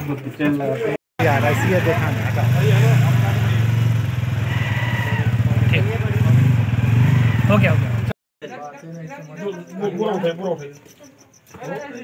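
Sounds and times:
people talking: 0.0s - 3.7s, 5.4s - 6.5s, 7.5s - 12.0s.

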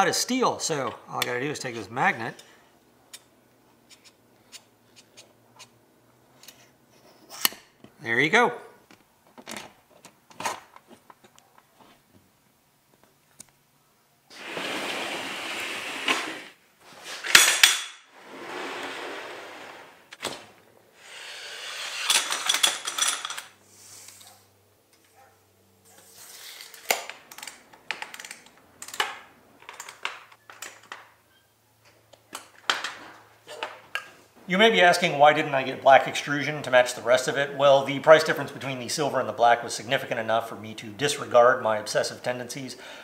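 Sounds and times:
metal sliding scrapes: 14.3s - 20.2s, 21.0s - 24.3s.

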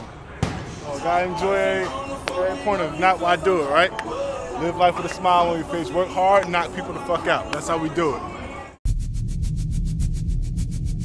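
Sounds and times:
deep low rumble: 8.9s - 11.0s.

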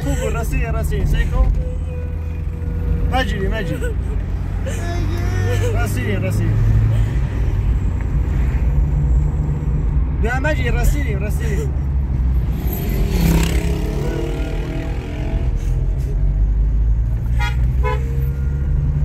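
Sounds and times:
person speaking: 0.0s - 2.2s
engine and road rumble in car: 0.0s - 19.0s.

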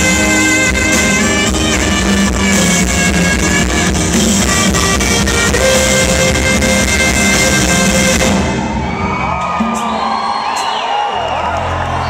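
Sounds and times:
live band playing: 0.0s - 11.9s
crowd cheering and whooping: 8.2s - 12.0s.

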